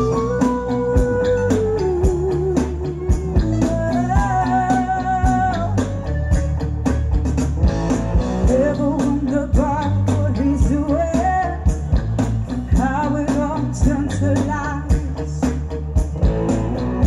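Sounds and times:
woman singing long notes: 0.0 - 5.9
live band playing slow beat: 0.0 - 17.0.

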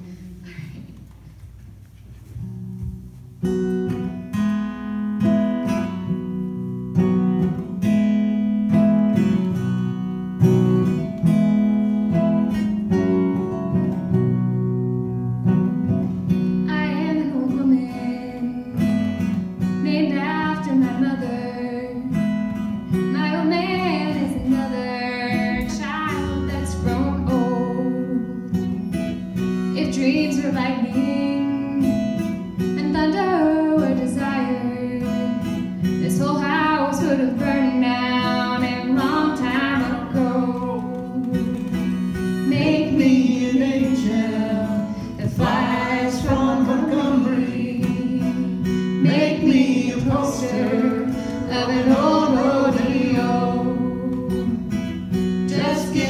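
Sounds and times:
acoustic guitar folk music: 0.0 - 56.0
lap slide guitar melody: 3.5 - 56.0.

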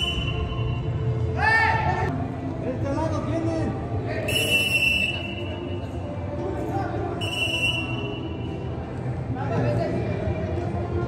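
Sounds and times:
referee's whistle blast: 0.0 - 0.7, 7.2 - 8.3.

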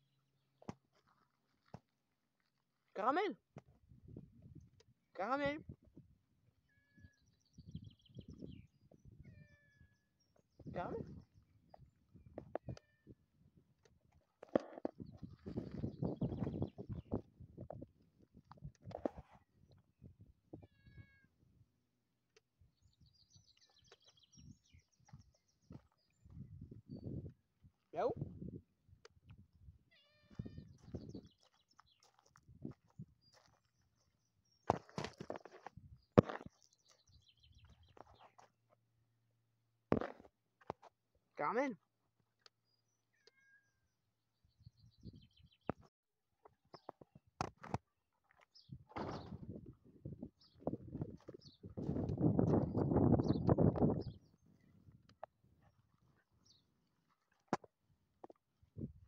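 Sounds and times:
soft crunching: 0.6 - 2.9, 30.3 - 34.0, 34.6 - 38.8
cat meowing: 9.2 - 9.9, 12.6 - 13.2, 20.6 - 21.3, 29.9 - 30.7, 43.1 - 43.8.

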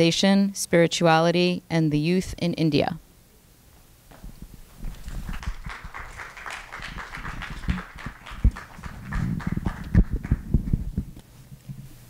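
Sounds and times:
audience applauding: 4.9 - 10.8.

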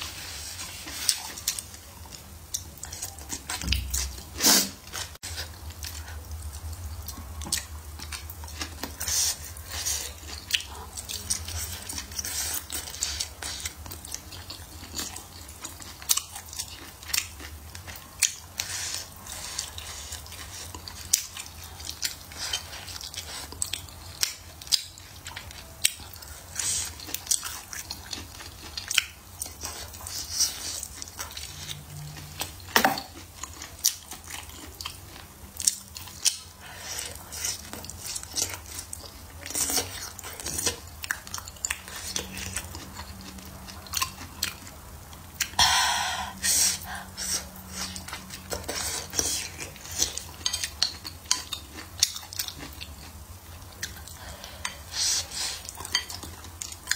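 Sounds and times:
chewing and biting food: 0.1 - 45.6, 46.8 - 56.9.

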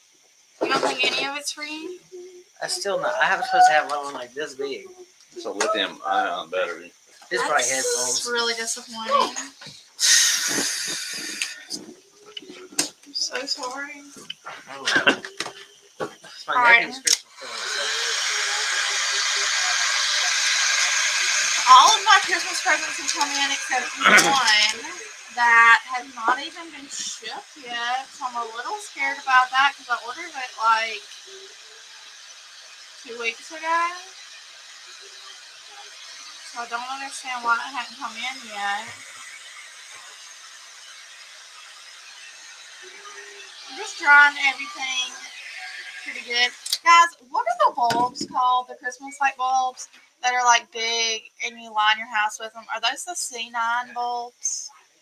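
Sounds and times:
heat gun fan hissing: 0.0 - 54.6.

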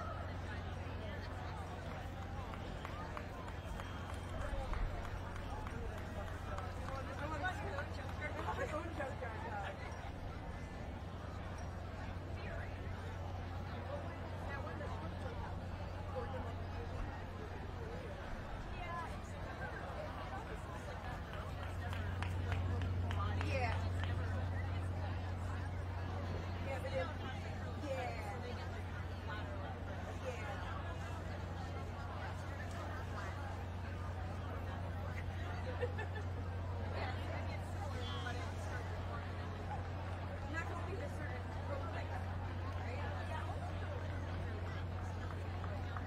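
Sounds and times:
spectators chattering: 0.0 - 46.0.

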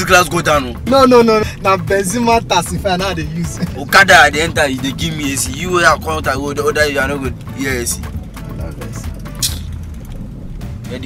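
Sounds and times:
car cabin rumble: 0.0 - 11.0
brief hiss: 9.4 - 9.7.

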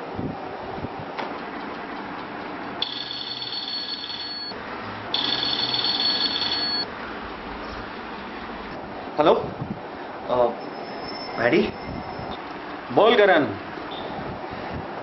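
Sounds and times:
mobile phone ringing: 2.8 - 6.9.

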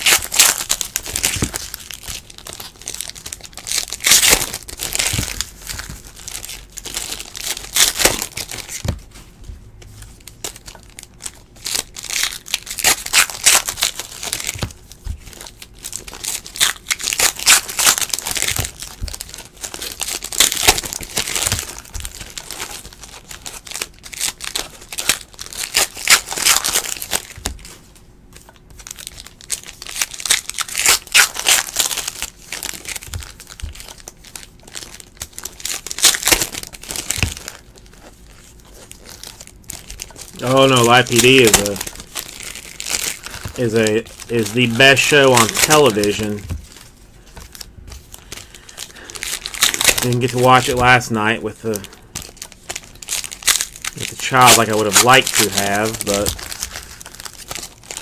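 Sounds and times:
foil wrappers crinkling and tearing: 0.0 - 9.3, 10.0 - 58.0
cards being handled: 0.0 - 58.0.

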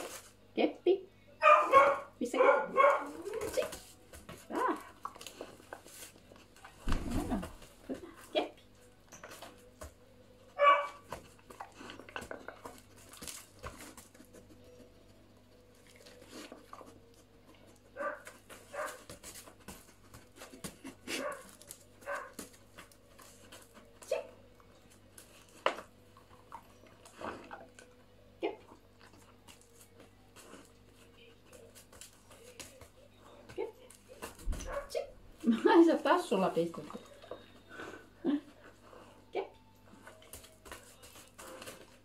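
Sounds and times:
dog barking: 1.4 - 3.7, 10.6 - 11.0, 18.0 - 19.1, 21.1 - 22.4, 34.6 - 35.1.

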